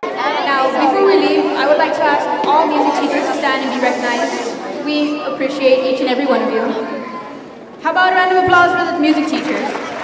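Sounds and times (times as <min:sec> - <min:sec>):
girl speaking over sound system: 0:00.4 - 0:06.9.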